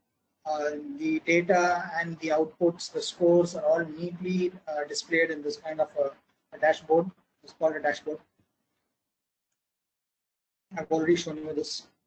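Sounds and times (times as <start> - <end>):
person speaking: 0.5 - 8.2, 10.7 - 12.0.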